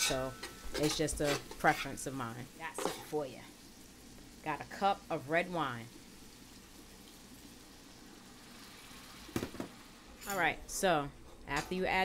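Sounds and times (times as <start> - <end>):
vegetables sizzling in pan: 0.0 - 12.0
wine poured into hot pan: 6.0 - 10.2.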